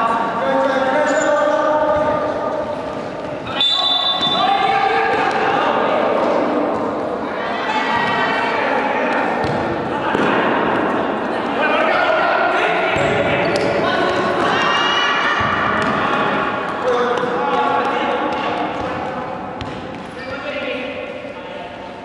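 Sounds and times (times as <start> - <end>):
players shouting in gym: 3.4 - 19.2.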